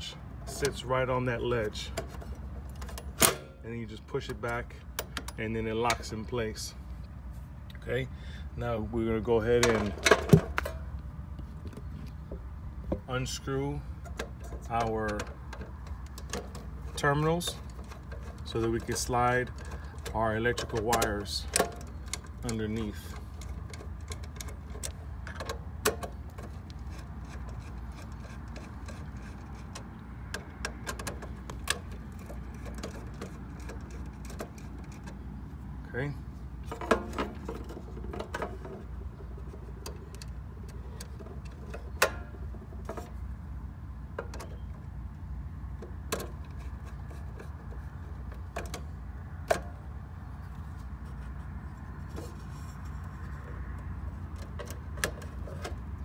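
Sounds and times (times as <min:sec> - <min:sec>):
low background hum: 0:00.0 - 0:56.0
screwdriver clicks and scrapes: 0:14.1 - 0:35.2.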